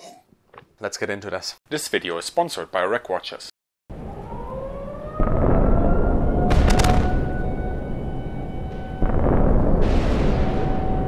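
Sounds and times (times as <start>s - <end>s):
siren-like wail: 3.9s - 11.0s
explosion boom: 5.2s - 11.0s
sharp cracks: 6.5s - 7.3s.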